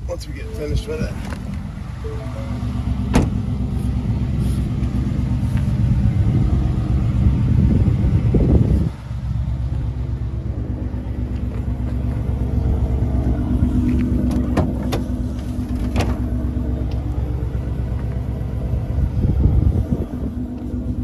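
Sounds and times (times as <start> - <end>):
car engine idling: 0.0 - 21.0
tailgate clicks: 3.1 - 3.4, 13.9 - 16.3.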